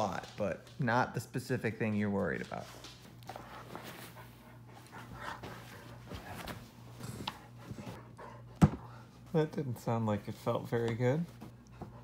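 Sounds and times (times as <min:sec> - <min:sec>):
dog shuffling: 0:01.8 - 0:08.1, 0:08.9 - 0:12.0
dog panting: 0:02.6 - 0:09.2.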